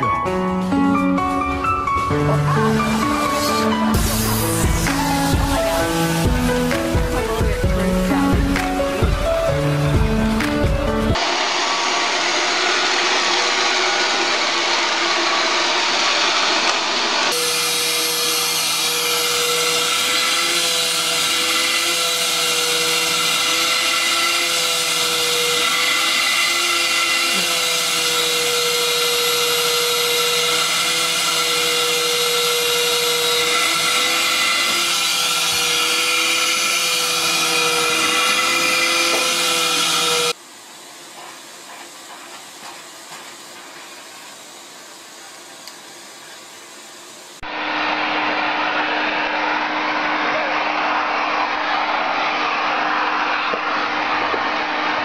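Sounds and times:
vacuum cleaner whining: 0:00.0 - 0:55.0
harsh hissing motor noise: 0:01.9 - 0:55.0.

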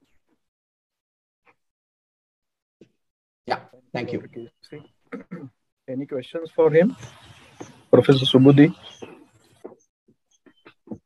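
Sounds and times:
man speaking: 0:05.9 - 0:07.0, 0:07.9 - 0:08.8.

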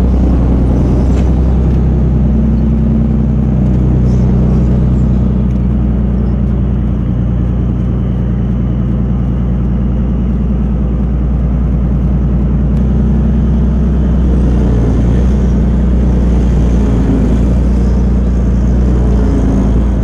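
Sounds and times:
tank diesel engine running: 0:00.0 - 0:20.0.

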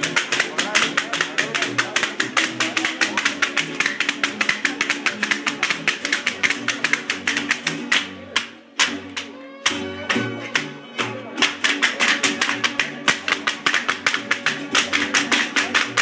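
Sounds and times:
foot taps on concrete: 0:00.0 - 0:16.0
string band music: 0:00.0 - 0:16.0.

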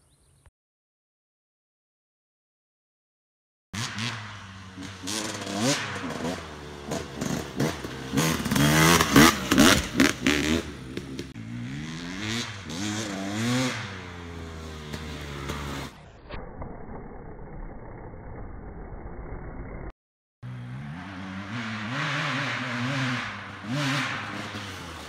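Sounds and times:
dirt bike engine revving: 0:03.8 - 0:16.2, 0:20.4 - 0:25.0.

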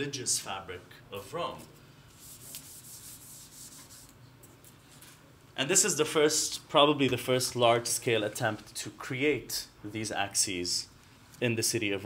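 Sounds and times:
faint rubbing noise: 0:02.1 - 0:04.2.

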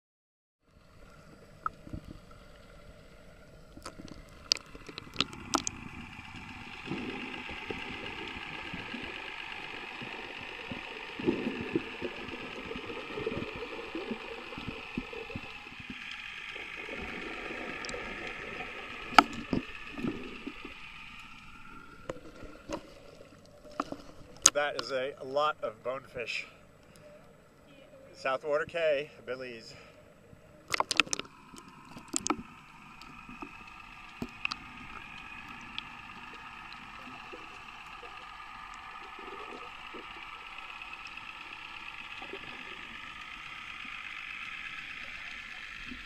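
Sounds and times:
muffled underwater wash: 0:00.6 - 0:46.0
faint continuous hum: 0:00.7 - 0:46.0
low rumbling: 0:00.7 - 0:46.0
sharp clicks: 0:03.7 - 0:16.6.

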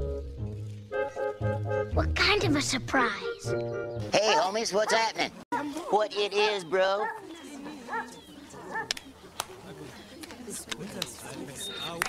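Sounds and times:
murmur of voices: 0:04.1 - 0:12.0.

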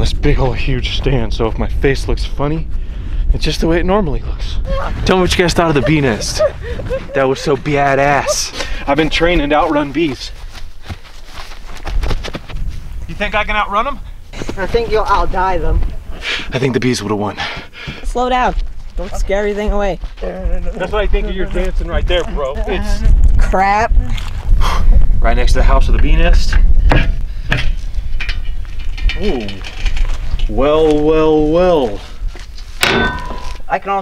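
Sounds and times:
steady low rumble: 0:00.0 - 0:33.9
footsteps running on grass: 0:09.0 - 0:13.1
low rumble: 0:20.4 - 0:30.8
metal hatch lid clanking: 0:32.8 - 0:33.6.

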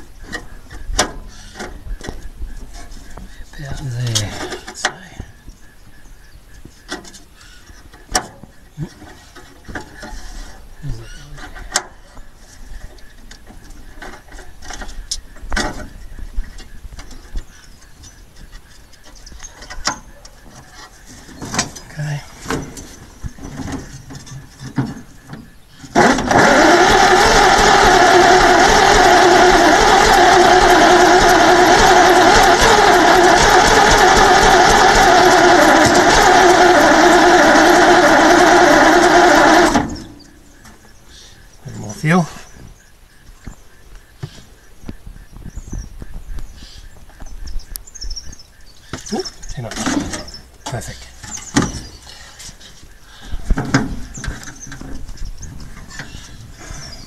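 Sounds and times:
starter motor cranking engine: 0:25.8 - 0:40.7.

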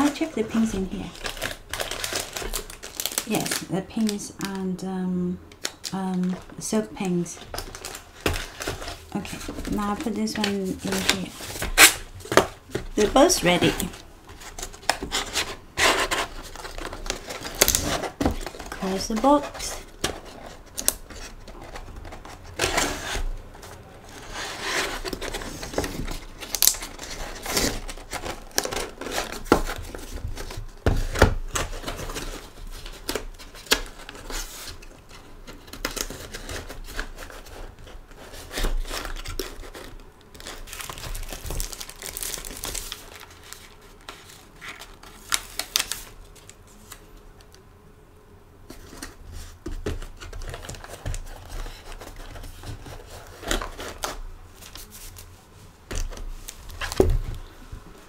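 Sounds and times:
cardboard boxes being folded: 0:00.0 - 0:04.6, 0:05.6 - 0:47.0, 0:48.7 - 0:58.0
paper rustling: 0:06.0 - 0:47.0.

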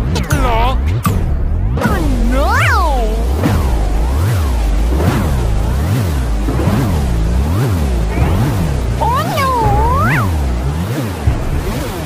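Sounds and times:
pulsing bass: 0:00.0 - 0:12.0
warped nursery rhyme music: 0:01.8 - 0:04.0, 0:09.0 - 0:10.5.

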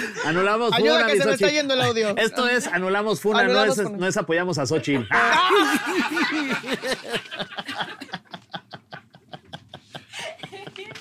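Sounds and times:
man and woman laughing: 0:04.9 - 0:11.0.

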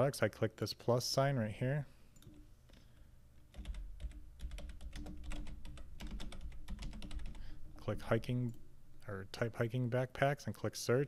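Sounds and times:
typing on computer keyboard: 0:03.5 - 0:07.4.

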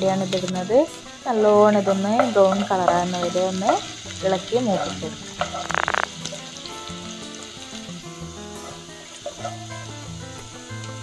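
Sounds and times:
shallots sizzling in oil: 0:00.0 - 0:11.0.

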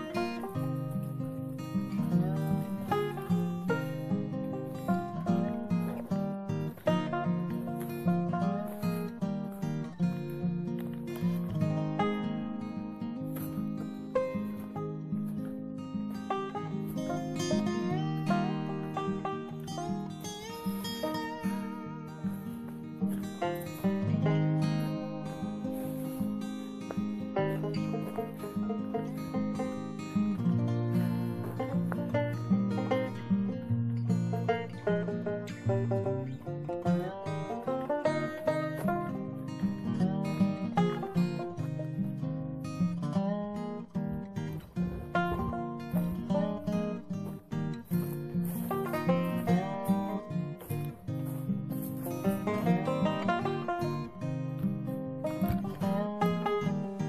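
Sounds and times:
acoustic guitar strumming: 0:00.0 - 0:57.0.

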